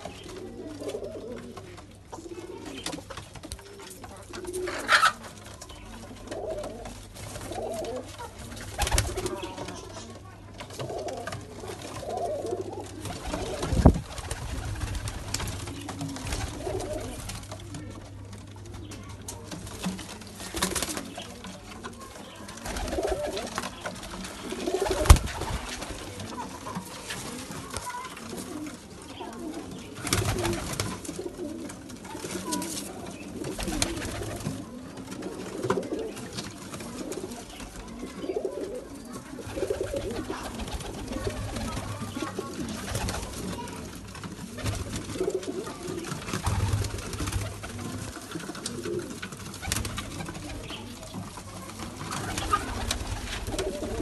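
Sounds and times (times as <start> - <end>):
pigeons cooing: 0.0 - 54.0.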